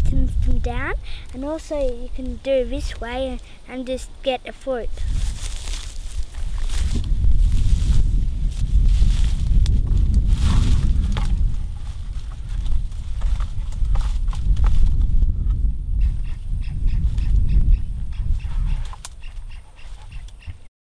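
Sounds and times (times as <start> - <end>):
steady low rumble: 0.0 - 20.5
brambles crackling underfoot: 1.0 - 15.5.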